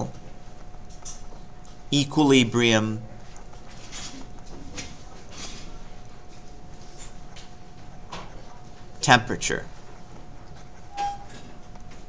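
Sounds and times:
room hiss with faint hum: 0.0s - 12.0s.

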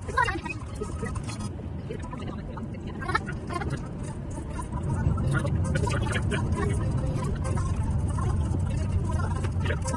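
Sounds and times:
car engine and tyres rumbling: 0.0s - 9.9s.

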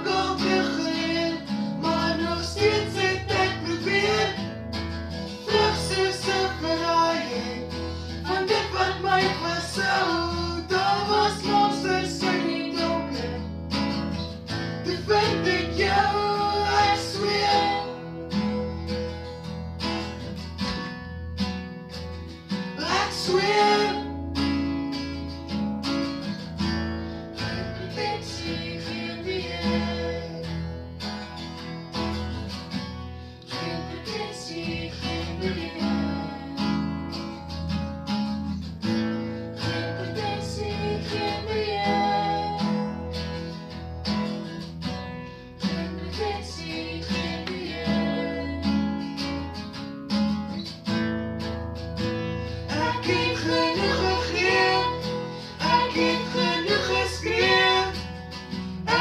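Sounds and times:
man and woman singing duet: 0.0s - 4.5s, 5.4s - 13.5s, 14.8s - 18.4s, 22.8s - 24.2s, 27.4s - 30.7s, 33.5s - 37.0s, 39.6s - 43.2s, 45.6s - 49.1s, 52.7s - 58.2s
acoustic guitar strumming chords: 0.0s - 59.0s.

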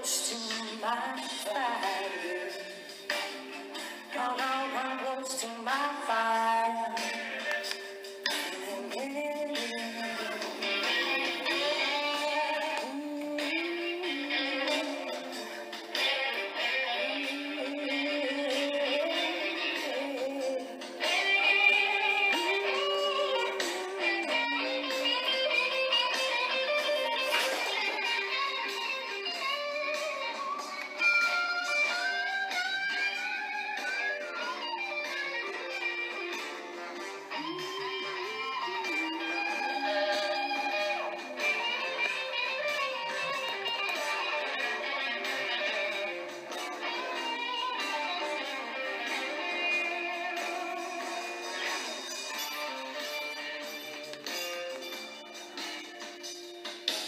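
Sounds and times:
electric guitar solo: 0.0s - 56.6s
backing band playing blues-rock: 0.0s - 57.0s.

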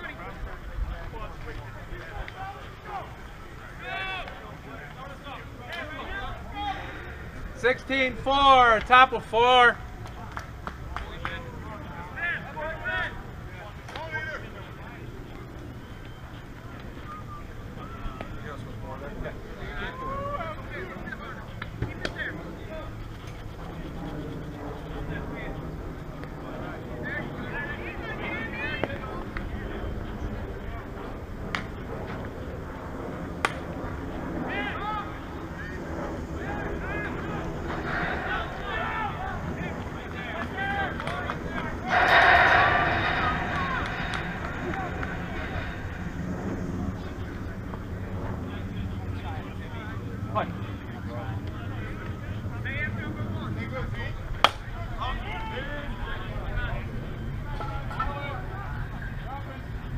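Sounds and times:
distant voices calling and chatting: 0.0s - 59.9s
wind rumble on microphone: 22.3s - 59.9s.

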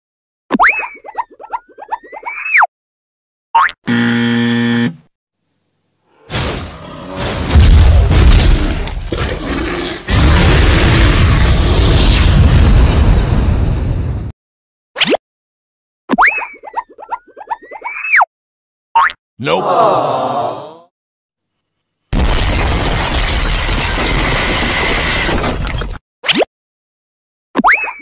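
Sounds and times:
low harsh buzzer: 3.9s - 5.1s.

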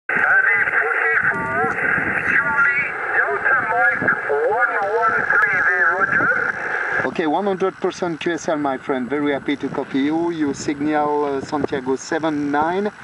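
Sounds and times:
voice over radio speaker: 0.1s - 13.0s.

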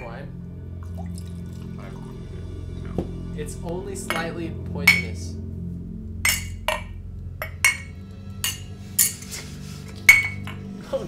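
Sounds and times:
drinking glasses clinking: 4.1s - 5.2s, 6.2s - 9.3s, 10.1s - 10.7s.

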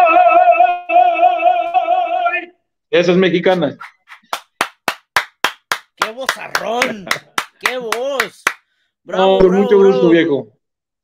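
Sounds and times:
person clapping hands: 4.1s - 8.7s.

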